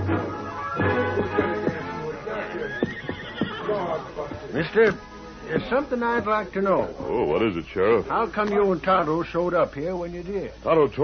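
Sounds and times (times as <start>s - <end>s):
horse whinnying: 2.4s - 4.0s.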